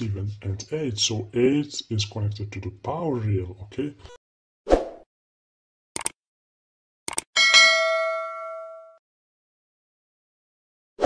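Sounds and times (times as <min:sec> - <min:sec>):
quick mouse clicks: 0:07.1 - 0:07.3
notification bell chime: 0:07.4 - 0:09.0.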